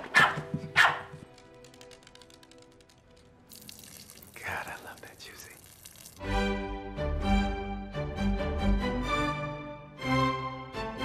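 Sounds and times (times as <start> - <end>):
small dog barking: 0.0 - 1.2.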